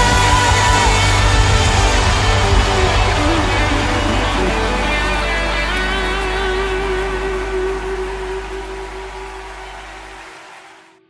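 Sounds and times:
electric guitar notes ringing: 0:00.0 - 0:10.1.

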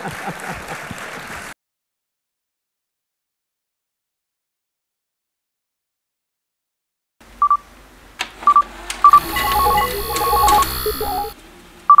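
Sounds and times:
short electronic beeps: 0:07.4 - 0:07.6, 0:08.5 - 0:12.0
high steady whine: 0:09.1 - 0:11.4.

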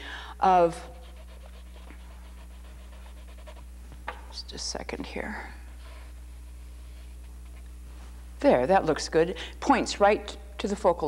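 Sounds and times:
low electrical hum: 0:00.0 - 0:11.0
pencil sketching on canvas: 0:00.5 - 0:03.7.

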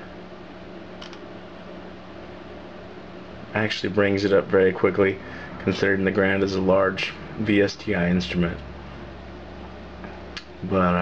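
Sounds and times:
computer cooling fans humming: 0:00.0 - 0:11.0.

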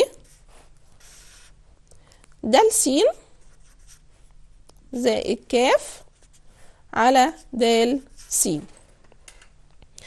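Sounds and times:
marker pen scratching: 0:00.0 - 0:01.6, 0:03.4 - 0:04.1, 0:07.3 - 0:08.6.

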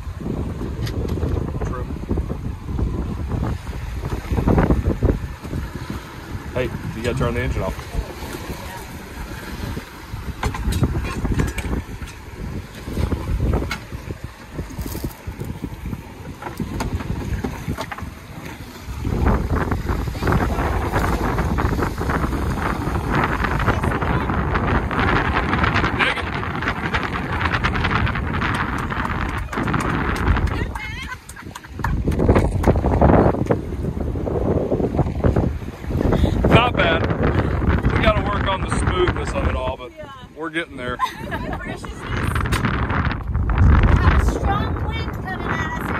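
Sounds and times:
wind buffeting microphone: 0:00.0 - 0:45.9.

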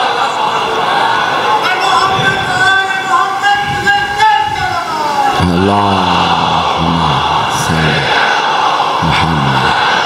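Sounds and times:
congregation reciting together: 0:00.0 - 0:10.0.

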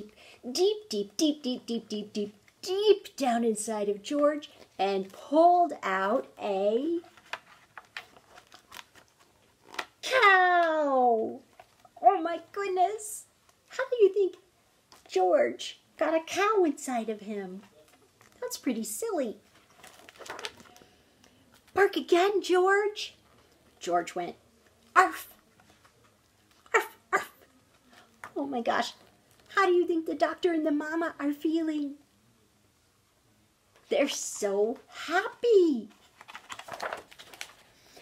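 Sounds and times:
book pages turning: 0:05.8 - 0:10.7, 0:19.4 - 0:21.8, 0:24.6 - 0:26.8, 0:33.7 - 0:38.0
woman imitating dog bark: 0:26.7 - 0:27.4.

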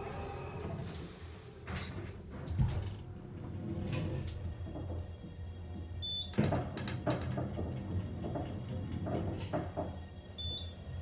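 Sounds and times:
elevator motor hum: 0:00.0 - 0:11.0.

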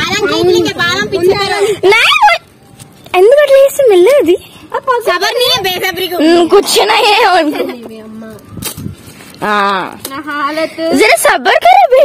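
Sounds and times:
woman excited high-pitched vocalising: 0:01.8 - 0:02.4.

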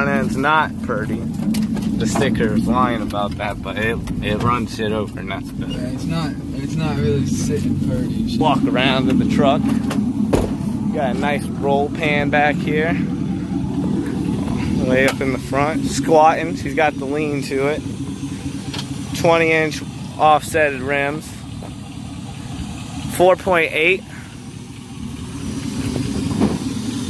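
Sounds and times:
truck engine idling: 0:00.0 - 0:27.0.

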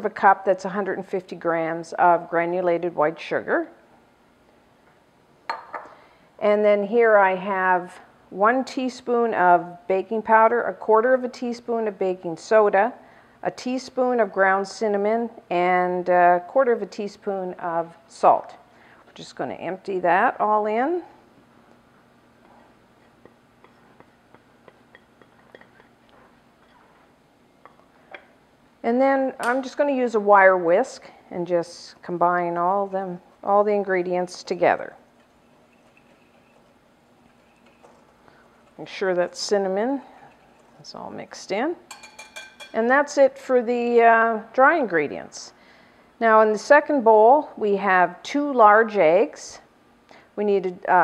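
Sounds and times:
dish tapping over glass bowl: 0:05.5 - 0:05.9, 0:41.9 - 0:42.8
glass bowl clinking: 0:05.5 - 0:05.9, 0:35.2 - 0:38.6, 0:41.9 - 0:42.8.

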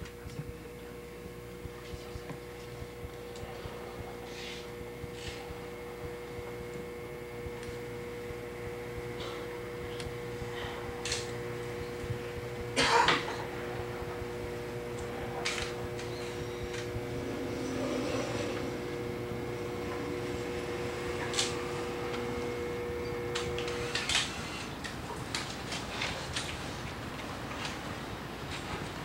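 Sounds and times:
potter's wheel humming: 0:00.0 - 0:29.0.

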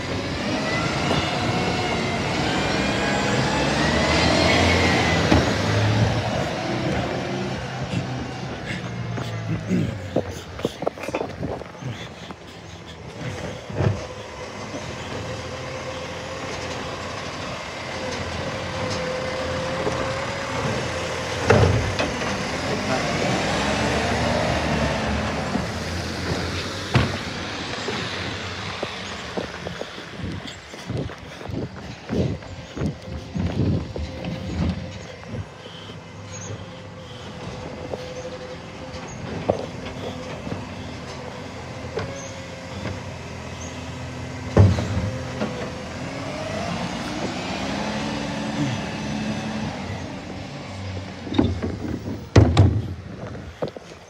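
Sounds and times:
garbage truck engine and hydraulics: 0:00.0 - 0:54.0
thumps and knocks: 0:51.3 - 0:53.8.

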